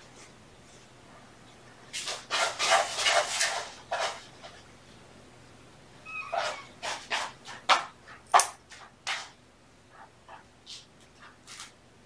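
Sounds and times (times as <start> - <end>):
kitten squeaking: 6.0 - 6.8.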